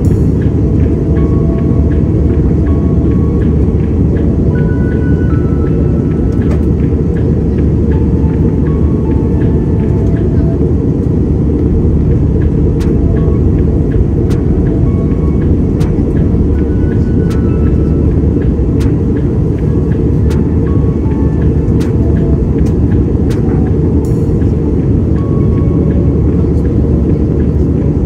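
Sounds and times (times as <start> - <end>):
airliner cabin rumble: 0.0 - 28.0
background music: 0.0 - 28.0.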